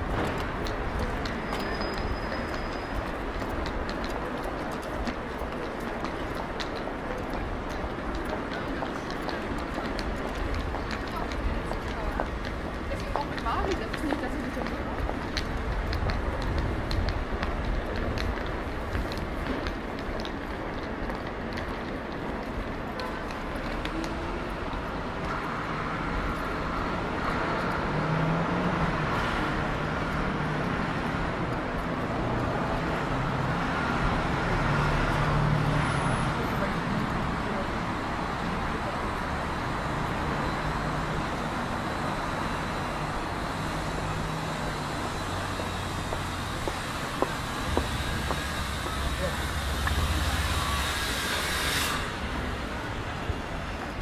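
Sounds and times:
passers-by talking: 0.0 - 54.0
vehicles passing: 0.0 - 54.0.

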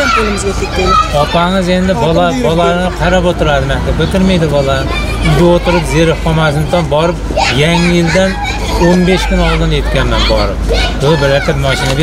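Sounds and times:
adult talking: 1.1 - 12.0.

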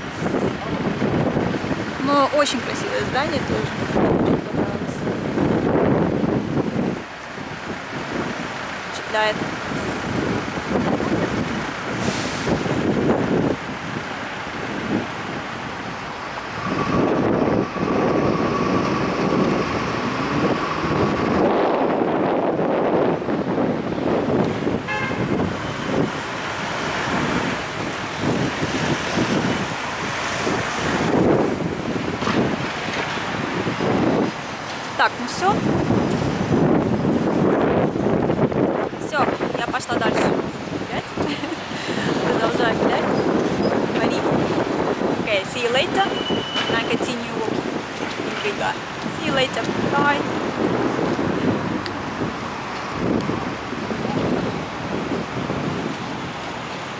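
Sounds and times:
street traffic passing: 0.0 - 56.9.

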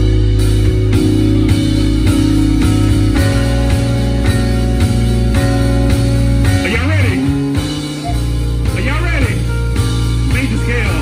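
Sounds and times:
deep bass line: 0.0 - 11.0
drum kit: 0.0 - 11.0.

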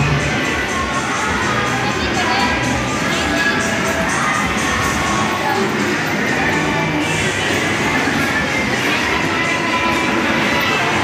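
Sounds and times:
children's voices: 0.0 - 11.0
crowd chatter: 0.0 - 11.0.

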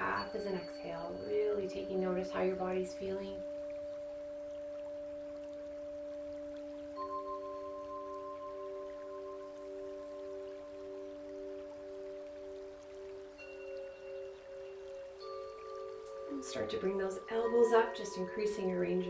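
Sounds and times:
calm bell-like background music: 0.0 - 19.0.

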